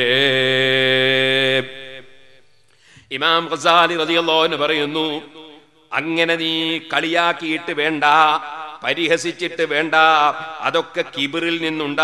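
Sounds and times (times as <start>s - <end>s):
man chanting: 0.0s - 2.1s, 3.1s - 12.0s.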